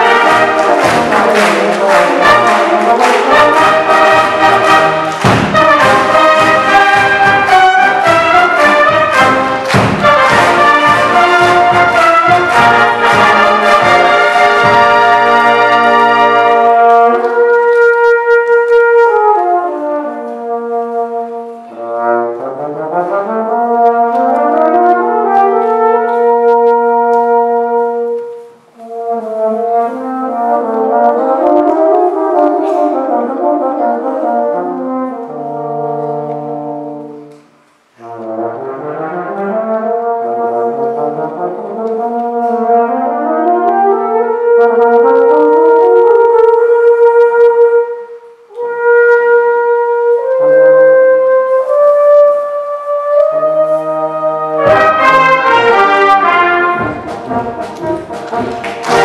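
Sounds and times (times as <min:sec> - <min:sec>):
brass band playing: 0:00.0 - 0:59.0.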